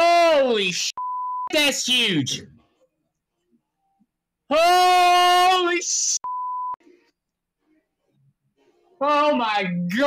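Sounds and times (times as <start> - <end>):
censor bleep: 1.0 - 1.5, 6.2 - 6.8
person shouting: 4.5 - 6.2.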